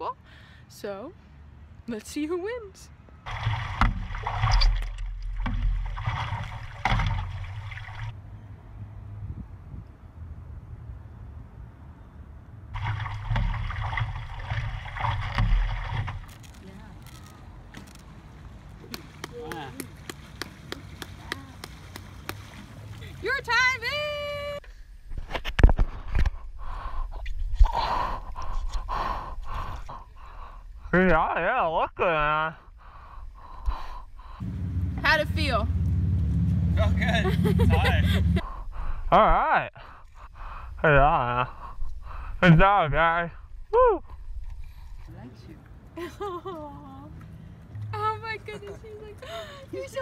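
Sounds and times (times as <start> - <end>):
water splashing around paddleboards: 3.2 - 8.2, 12.8 - 24.1
low rumbling noise: 33.4 - 39.2.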